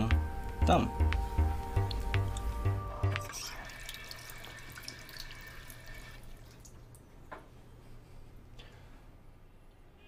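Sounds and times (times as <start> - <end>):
music with pulsing bass beat: 0.0 - 3.3
water drips: 1.0 - 7.4
tap water trickling into sink: 3.2 - 7.0.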